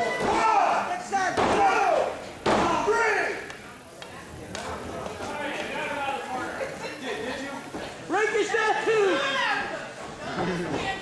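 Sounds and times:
people shouting: 0.0s - 3.3s, 8.4s - 9.8s.

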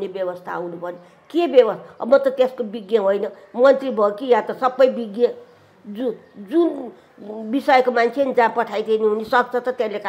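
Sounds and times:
elderly woman talking: 0.0s - 10.0s.

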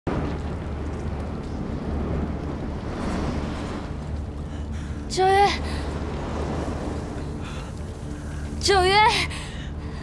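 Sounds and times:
wind-like rushing noise: 0.1s - 8.8s
deep rumble: 0.1s - 10.0s.

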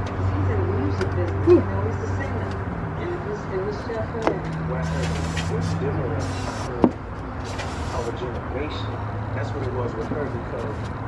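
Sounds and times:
faint voices: 0.0s - 7.0s
low engine hum: 0.0s - 11.0s.

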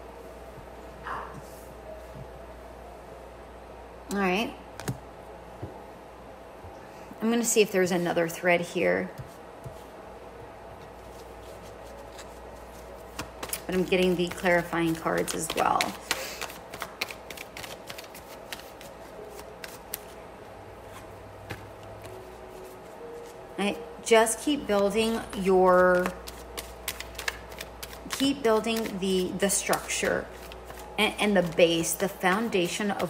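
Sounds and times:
cards being shuffled: 11.0s - 20.2s, 25.2s - 33.0s.

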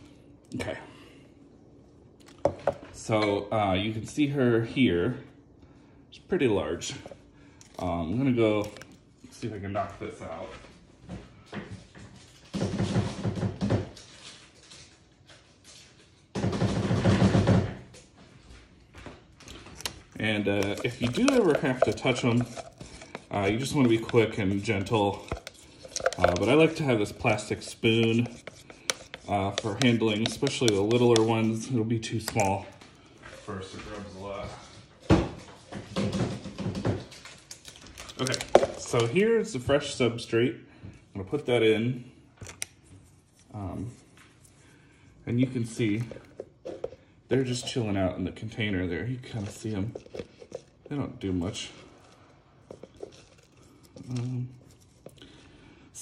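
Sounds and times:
plastic tubs knocking: 20.2s - 31.5s.

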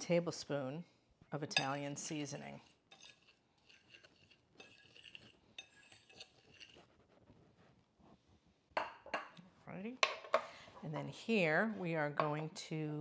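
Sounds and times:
fork scraping ceramic bowl: 1.5s - 7.0s.

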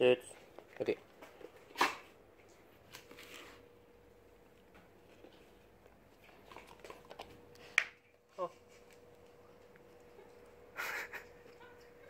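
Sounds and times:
dog chewing treat: 5.0s - 7.8s.

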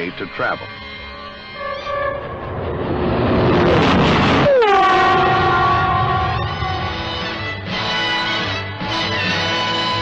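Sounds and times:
train horn: 0.6s - 2.6s, 4.4s - 10.0s
train rushing past: 0.6s - 10.0s.

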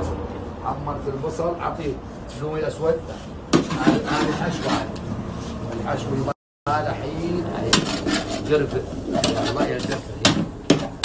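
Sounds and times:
people talking: 5.7s - 10.4s.

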